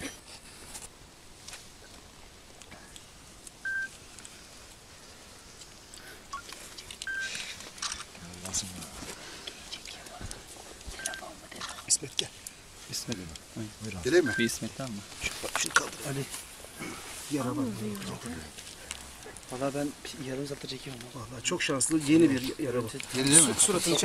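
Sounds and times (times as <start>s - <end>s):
rustling and handling noise: 0.0s - 24.0s
short electronic beeps: 7.1s - 7.3s, 14.2s - 14.5s.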